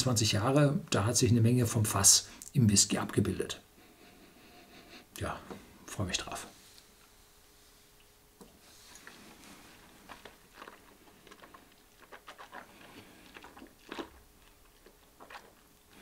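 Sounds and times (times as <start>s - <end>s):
man sipping and lip smacking: 8.0s - 16.0s.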